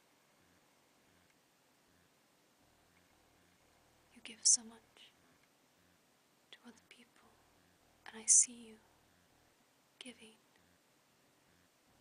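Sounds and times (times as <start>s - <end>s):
faint whispering: 2.9s - 9.0s, 10.0s - 10.8s.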